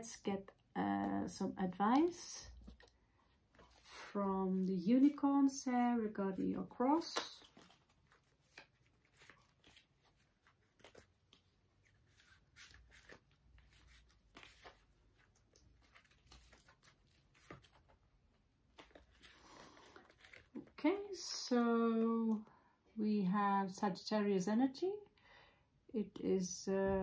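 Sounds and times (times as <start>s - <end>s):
cards being shuffled: 1.0s - 5.2s, 6.9s - 20.8s.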